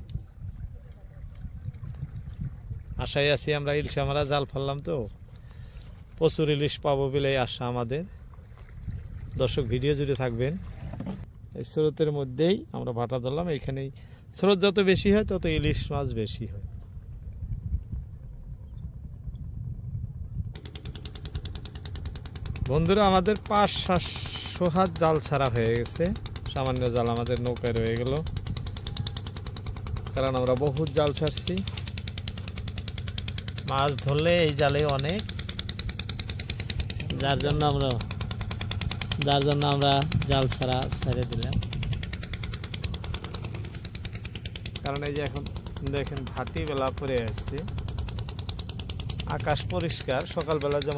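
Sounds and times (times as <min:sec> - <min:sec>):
small boat engine running: 0:00.0 - 0:50.9
rapid clatter of sharp ticks: 0:20.6 - 0:50.9.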